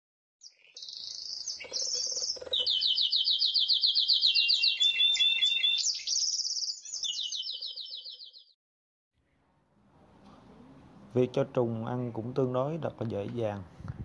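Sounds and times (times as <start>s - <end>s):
birds trilling: 0.4s - 8.5s.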